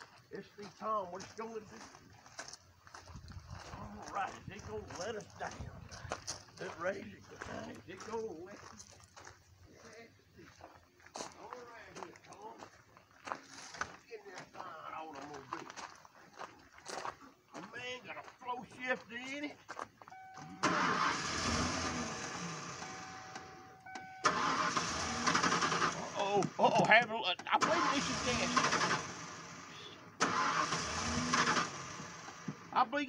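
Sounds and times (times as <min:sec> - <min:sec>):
pickup truck engine starting: 0:20.1 - 0:32.9
indistinct talk: 0:25.8 - 0:29.0.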